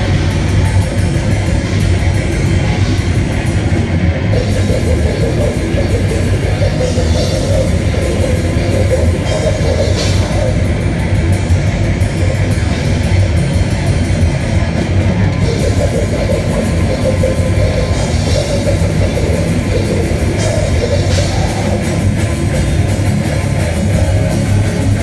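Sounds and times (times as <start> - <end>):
distorted electric guitars: 0.0 - 25.0
drum kit: 0.0 - 25.0.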